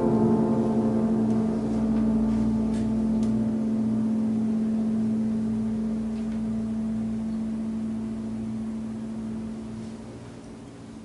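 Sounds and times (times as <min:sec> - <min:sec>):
clarinet piano and bass chord: 0:00.0 - 0:10.5.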